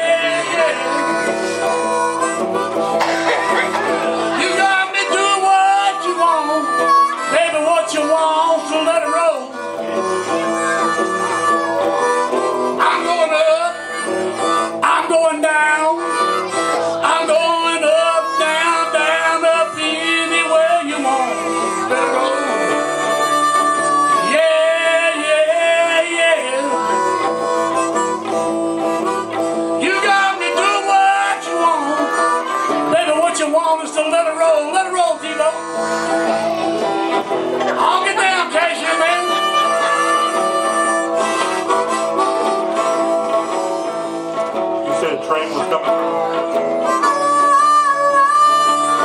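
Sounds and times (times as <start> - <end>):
blues harmonica: 0.0 - 49.0
strummed electric guitar: 0.0 - 49.0.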